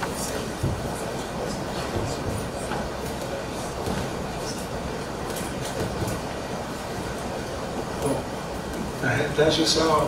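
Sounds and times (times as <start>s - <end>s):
rumbling room noise: 0.0s - 10.0s.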